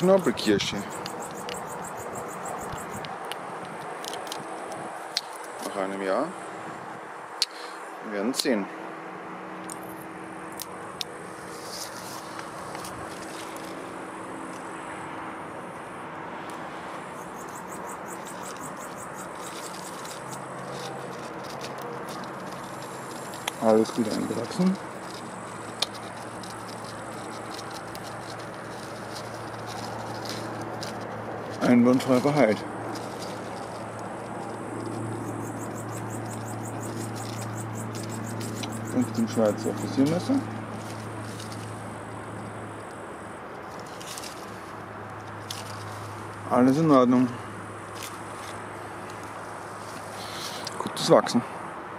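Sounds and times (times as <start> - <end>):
high-pitched insect chirping: 0.0 - 3.2, 17.0 - 32.3, 32.9 - 44.3
rapid high ticks: 0.3 - 5.6, 17.2 - 43.0
faint high chirping: 17.1 - 21.1, 35.1 - 40.2.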